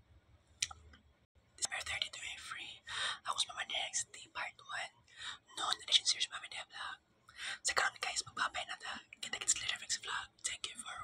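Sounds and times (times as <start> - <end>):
man whispering: 1.6 - 4.9, 7.6 - 11.0.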